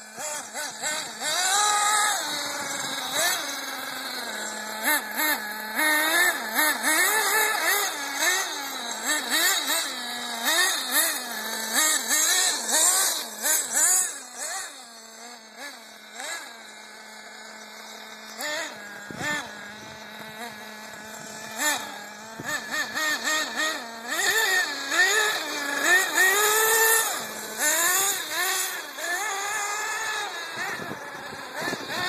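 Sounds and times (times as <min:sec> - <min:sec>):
rc car engine revving: 0:00.0 - 0:32.0.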